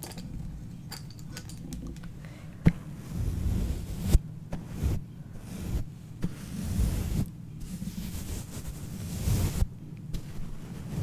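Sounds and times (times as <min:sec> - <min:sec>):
brush sweeping over microphone grille: 0:02.9 - 0:11.0.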